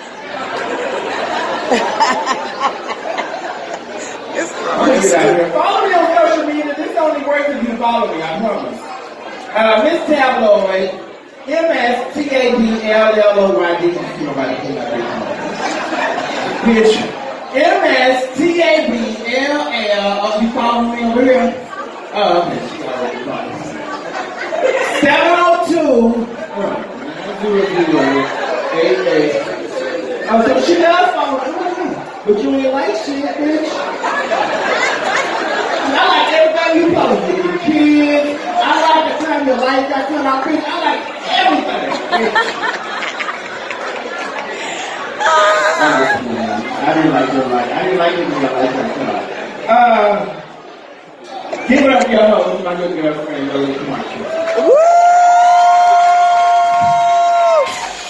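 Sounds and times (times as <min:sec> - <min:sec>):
people talking in a busy room: 0:00.0 - 0:58.0.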